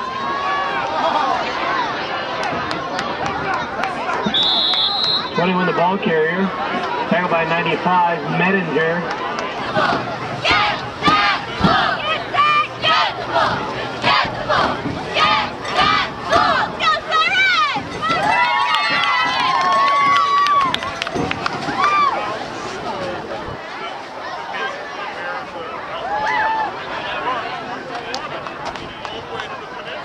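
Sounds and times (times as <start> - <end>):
crowd shouting and cheering: 0.0 - 30.0.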